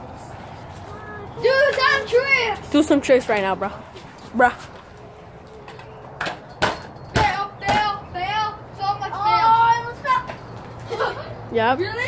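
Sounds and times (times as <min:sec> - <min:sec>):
scooter rolling on concrete: 0:00.0 - 0:12.0.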